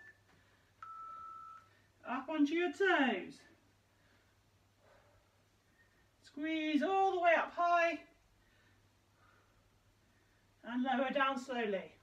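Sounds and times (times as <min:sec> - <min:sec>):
electronic beep: 0:00.0 - 0:00.2.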